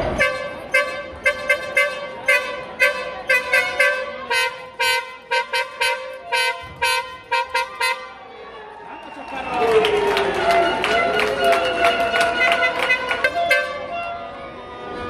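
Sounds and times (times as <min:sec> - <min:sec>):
handheld horn tooting: 0:00.0 - 0:08.2, 0:10.4 - 0:14.4.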